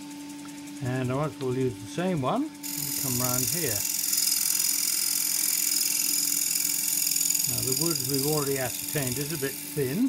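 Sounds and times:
wood lathe humming: 0:01.0 - 0:10.0
turning tool cutting wood: 0:02.6 - 0:10.0.

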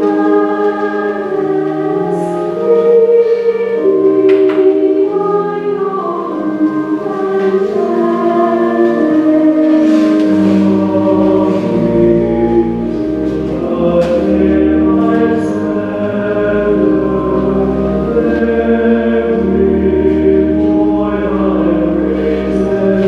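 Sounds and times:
choir singing a hymn: 0:00.0 - 0:23.0.

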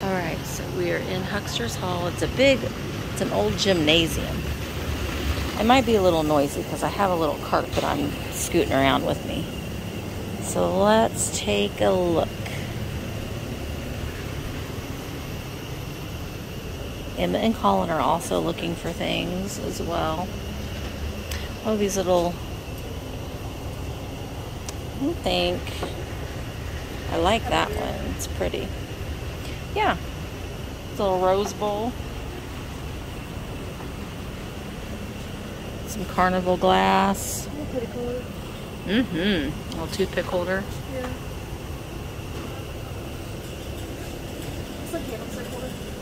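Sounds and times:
shopping cart wheels rolling: 0:43.4 - 0:46.0.

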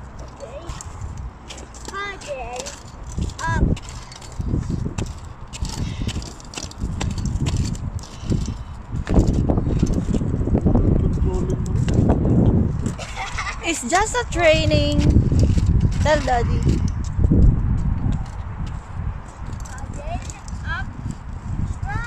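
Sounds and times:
footsteps: 0:00.0 - 0:13.0, 0:13.7 - 0:21.8.

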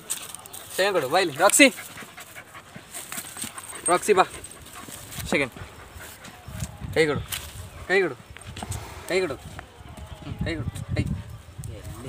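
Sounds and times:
puppy panting: 0:00.9 - 0:06.6.

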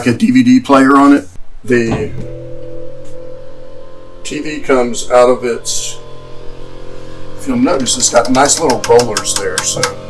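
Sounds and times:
electric lift motor humming: 0:01.4 - 0:10.0.

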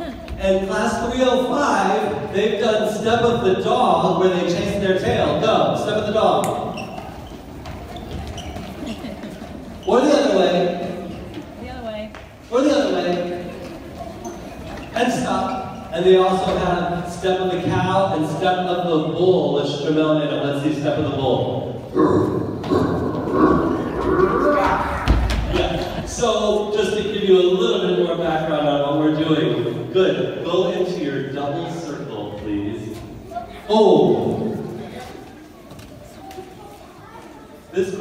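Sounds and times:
children imitating a bull: 0:22.0 - 0:25.5.

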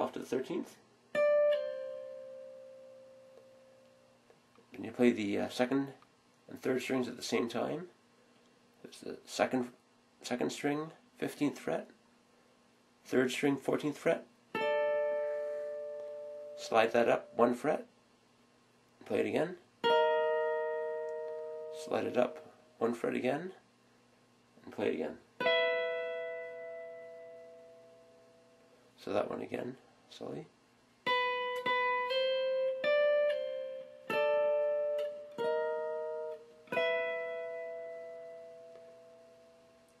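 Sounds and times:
person speaking: 0:00.0 - 0:00.8, 0:04.7 - 0:08.0, 0:08.8 - 0:12.0, 0:13.0 - 0:14.3, 0:16.6 - 0:17.9, 0:19.0 - 0:19.7, 0:21.7 - 0:23.7, 0:24.6 - 0:25.3, 0:29.0 - 0:30.6
electric guitar played slowly: 0:01.1 - 0:04.0, 0:14.5 - 0:17.4, 0:19.8 - 0:22.5, 0:25.4 - 0:28.6, 0:31.0 - 0:40.0.

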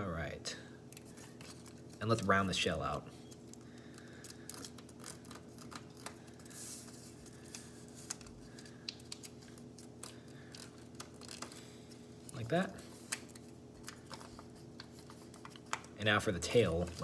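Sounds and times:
paper rustling and crackling: 0:01.0 - 0:02.5, 0:03.2 - 0:17.0.

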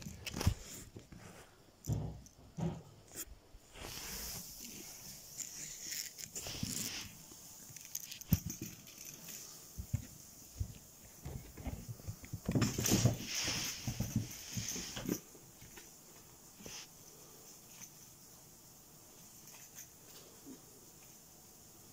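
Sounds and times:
cat playing taps and scuffles: 0:09.8 - 0:15.9.

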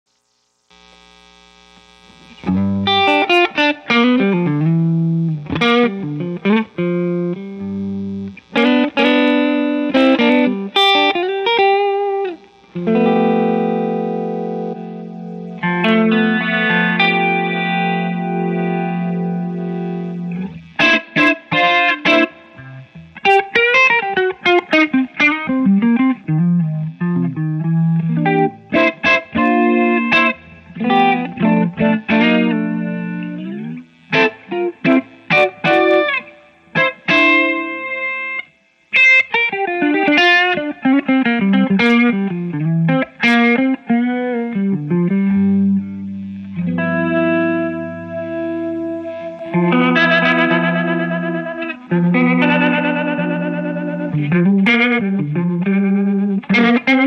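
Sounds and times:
electric guitar chords and phrases: 0:00.7 - 0:57.0.

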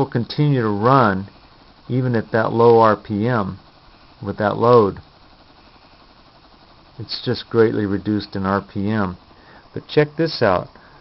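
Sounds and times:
electrostatic motor hissing: 0:00.0 - 0:11.0.

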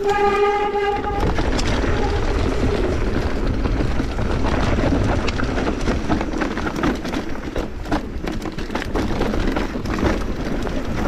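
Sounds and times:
bike rumbling and rattling on dirt: 0:00.0 - 0:11.0
wind on microphone: 0:00.0 - 0:11.0.

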